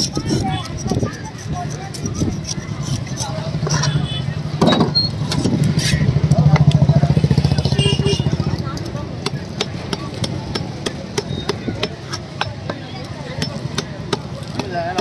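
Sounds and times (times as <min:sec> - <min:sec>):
knife scraping fish scales: 0:00.0 - 0:04.3, 0:05.0 - 0:06.1.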